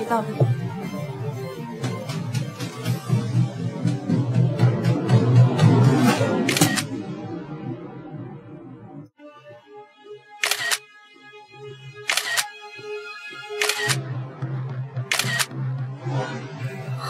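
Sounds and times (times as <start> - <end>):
soft background music: 0.0 - 7.0, 9.0 - 17.0
phone camera shutter clicking: 6.5 - 6.8, 10.4 - 10.8, 12.1 - 12.5, 13.6 - 14.0, 15.1 - 15.5.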